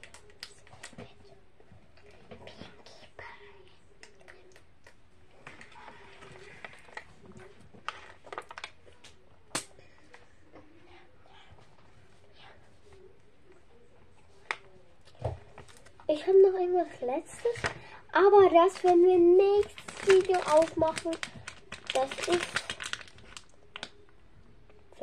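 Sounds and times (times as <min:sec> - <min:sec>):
faint clicks and rustles: 0:03.9 - 0:10.8, 0:18.7 - 0:24.8.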